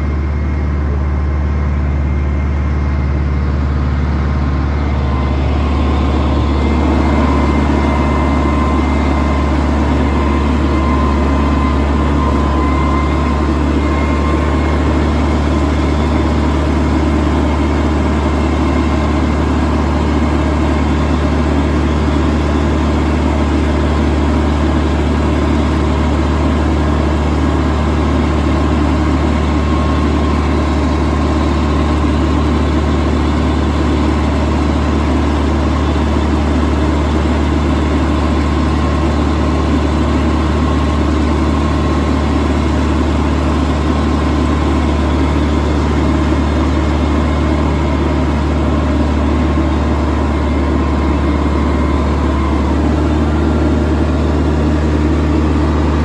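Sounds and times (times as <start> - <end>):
tractor engine running: 0.0 - 56.0.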